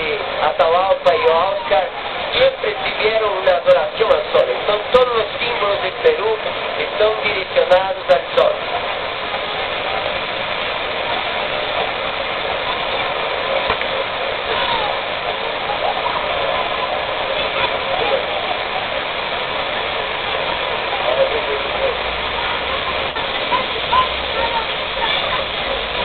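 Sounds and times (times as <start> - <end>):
faint voices: 0.0 - 26.0
fountain water splashing: 0.0 - 26.0.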